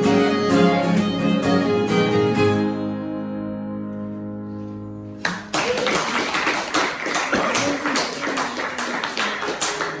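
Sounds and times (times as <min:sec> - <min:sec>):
audience clapping: 0:05.2 - 0:10.0.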